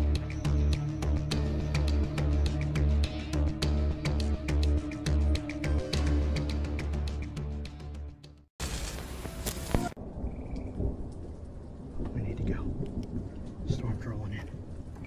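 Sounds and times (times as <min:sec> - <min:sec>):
orchestral music with low chords: 0:00.0 - 0:10.2.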